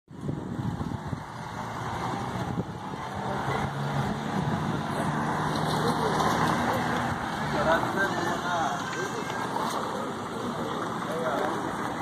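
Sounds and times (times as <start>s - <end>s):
street noise: 0.1s - 12.0s.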